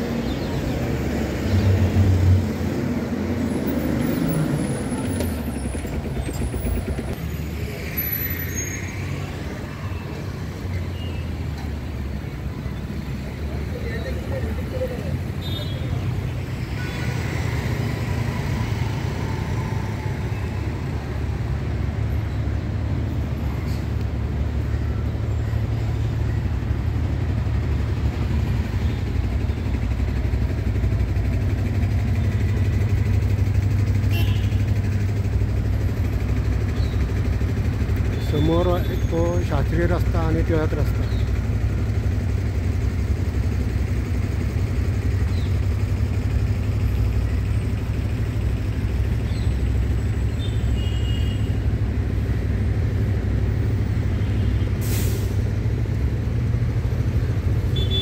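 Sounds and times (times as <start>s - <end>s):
street traffic rumble: 0.0s - 58.0s.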